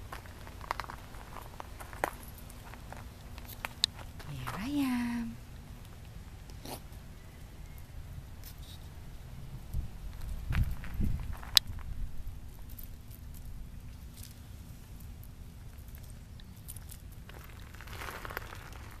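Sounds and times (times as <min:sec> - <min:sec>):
dog paws on gravel: 0:00.0 - 0:05.2, 0:10.1 - 0:14.4, 0:15.6 - 0:19.0
soft rustle: 0:09.7 - 0:19.0.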